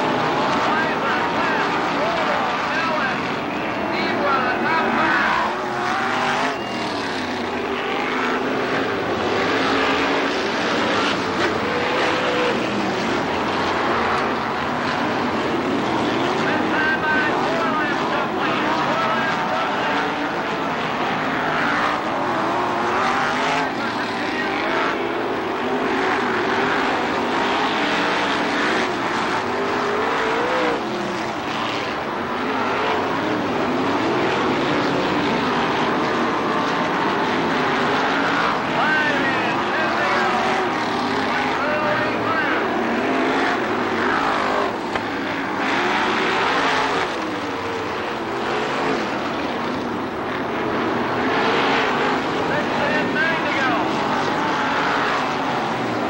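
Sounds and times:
racing car engines: 0.0s - 56.0s.

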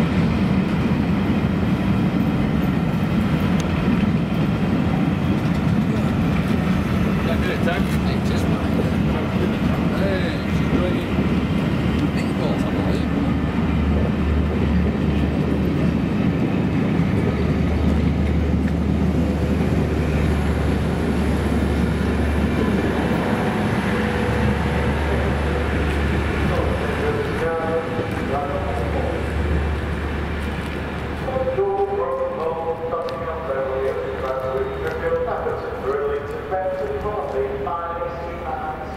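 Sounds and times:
train wheels rumbling on rail: 0.0s - 38.9s.

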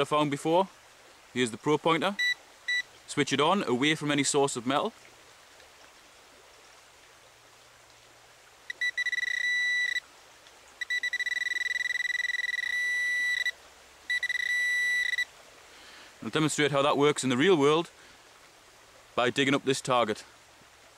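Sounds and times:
metal detector beeping alert: 2.2s - 2.8s, 8.7s - 10.0s, 10.8s - 15.3s.

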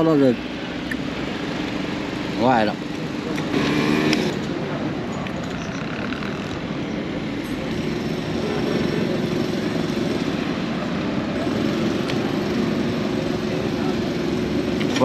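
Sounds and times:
road traffic: 0.0s - 15.0s
vehicle engine running: 0.0s - 15.0s.

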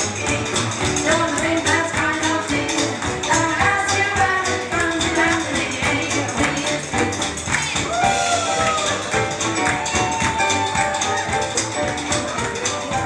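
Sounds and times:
upbeat jazz band music: 0.0s - 13.0s.

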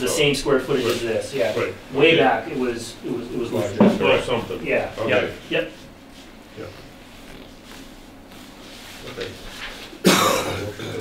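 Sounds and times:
man coughing: 10.0s - 11.0s.

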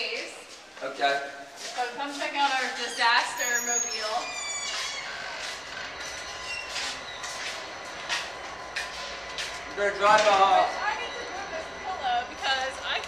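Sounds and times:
high squeal: 2.8s - 13.0s
freight train rumble: 5.5s - 13.0s.

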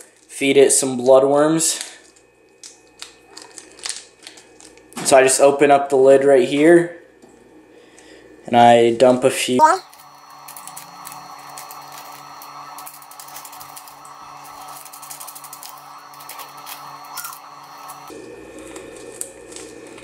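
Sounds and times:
plastic bag crinkling: 2.6s - 4.8s, 12.8s - 17.4s.

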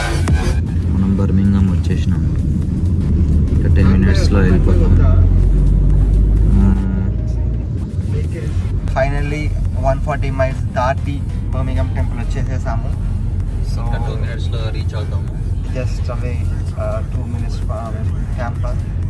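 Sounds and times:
road and engine rumble: 0.0s - 19.0s
people talking: 0.8s - 2.6s, 3.5s - 5.4s, 6.4s - 18.9s.

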